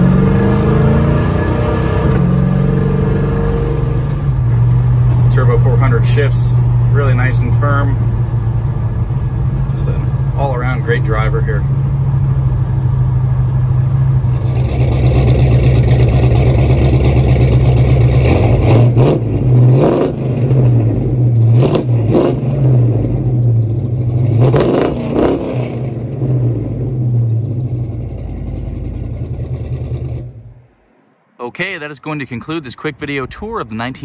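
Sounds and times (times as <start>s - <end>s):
truck engine revving: 0.0s - 34.0s.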